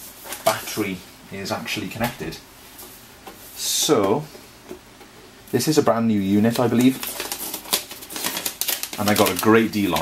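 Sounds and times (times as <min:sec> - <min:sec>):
paper label peeled off plastic: 0:06.5 - 0:10.0.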